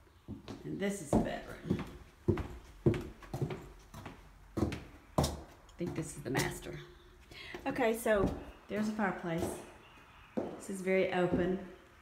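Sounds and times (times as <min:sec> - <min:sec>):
footsteps on tile floor: 0:00.2 - 0:06.8, 0:07.5 - 0:11.7.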